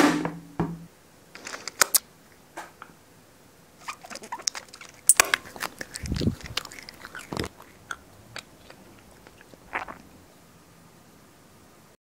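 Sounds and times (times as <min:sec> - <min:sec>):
comic snaps and chomps: 0:03.9 - 0:10.1.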